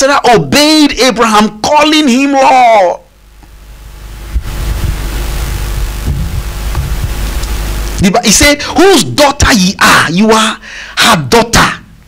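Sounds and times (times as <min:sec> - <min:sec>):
low hum: 0:03.1 - 0:08.0
steady rushing hiss: 0:03.2 - 0:08.6.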